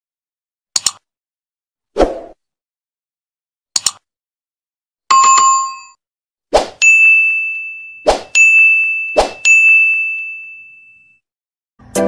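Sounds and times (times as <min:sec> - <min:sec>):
short clicks: 0:03.8 - 0:04.0
bright bell-like ding: 0:06.8 - 0:11.1
music: 0:11.8 - 0:12.0.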